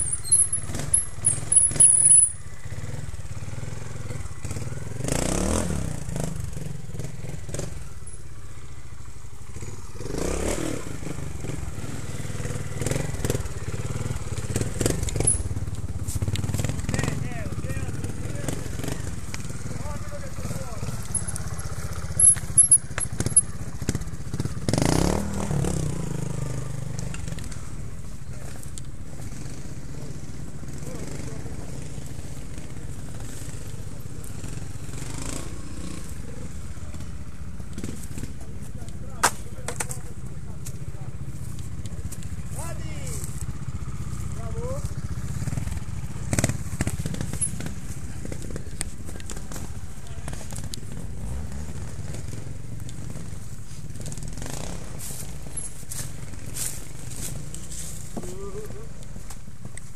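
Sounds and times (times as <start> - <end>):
motorcycle engines revving: 0.0 - 59.9.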